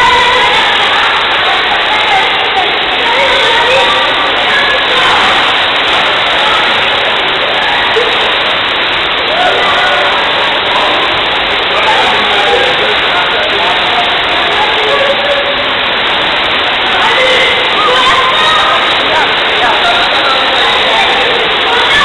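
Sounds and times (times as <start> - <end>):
churning water from pool jets: 0.0 - 22.0
crowd of bathers talking: 0.0 - 22.0.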